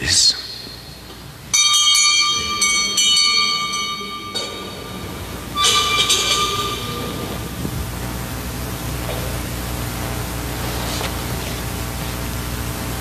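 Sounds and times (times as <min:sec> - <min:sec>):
altar bell ringing: 0:01.5 - 0:08.1.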